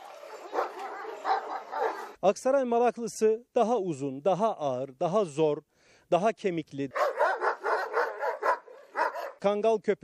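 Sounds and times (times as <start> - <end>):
large dogs barking aggressively: 0.0 - 2.2, 6.9 - 9.5.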